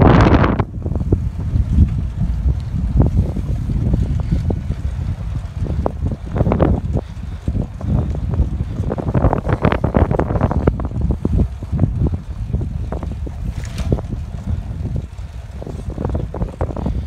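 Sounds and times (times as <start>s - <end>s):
low vehicle rumble: 0.0s - 17.0s
wind buffeting microphone: 0.0s - 17.0s.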